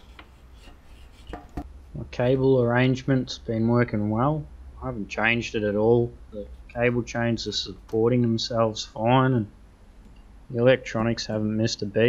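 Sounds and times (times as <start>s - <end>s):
faint rubbing: 0.0s - 1.7s
low steady hum: 0.0s - 12.0s.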